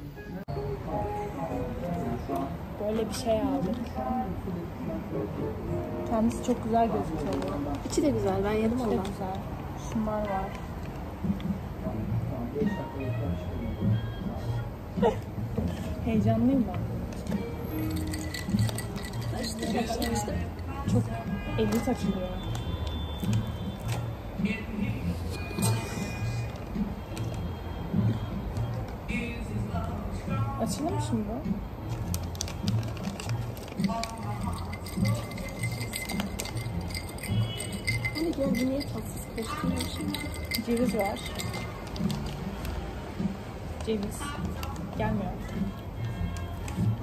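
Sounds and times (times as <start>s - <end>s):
background music: 0.0s - 47.0s
snack packet crinkling: 31.8s - 38.0s.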